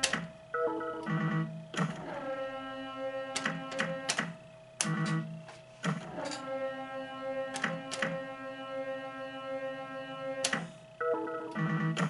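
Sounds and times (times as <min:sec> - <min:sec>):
slot machine background music: 0:00.0 - 0:02.4, 0:09.7 - 0:12.0.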